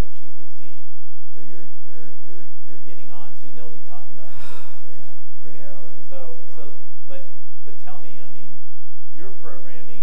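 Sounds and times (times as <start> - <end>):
man speaking into a microphone: 0.0 - 4.8, 5.4 - 10.0
loud breathy gasp: 4.2 - 5.4.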